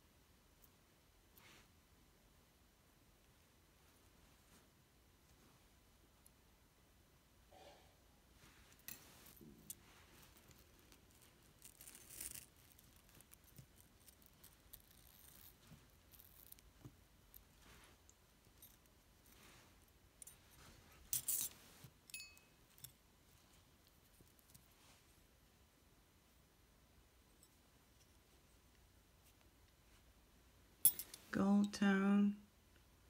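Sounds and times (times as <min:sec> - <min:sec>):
metal jewelry clinking: 0:08.4 - 0:23.0, 0:30.8 - 0:31.4
jewelry jangling: 0:20.2 - 0:23.0, 0:30.8 - 0:31.3.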